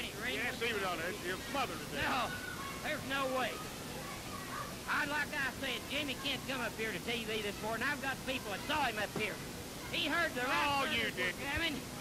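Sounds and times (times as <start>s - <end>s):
men arguing: 0.0s - 11.8s.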